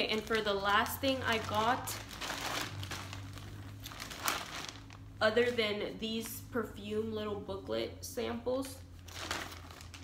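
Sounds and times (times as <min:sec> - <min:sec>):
plastic bag crinkling: 0:00.0 - 0:05.6, 0:09.0 - 0:10.0.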